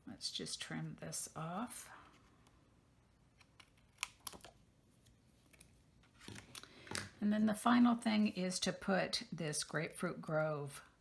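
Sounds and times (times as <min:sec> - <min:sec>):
card shuffling while handled: 0:03.4 - 0:07.1.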